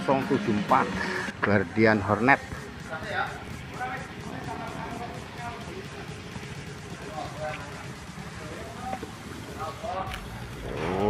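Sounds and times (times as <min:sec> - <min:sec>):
distant people talking: 0:01.4 - 0:11.0.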